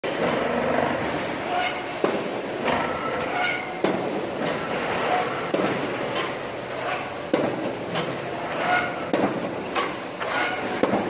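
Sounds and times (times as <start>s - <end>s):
steady machine noise: 0.0s - 11.0s.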